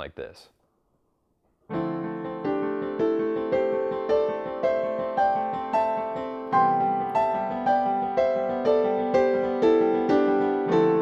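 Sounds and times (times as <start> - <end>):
digital piano playing: 1.7 - 11.0.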